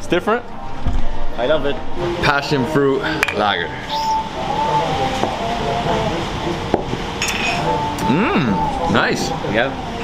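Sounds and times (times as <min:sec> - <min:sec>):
faint music: 0:00.0 - 0:10.0
glass mugs clinking: 0:03.2 - 0:03.5, 0:06.7 - 0:07.8.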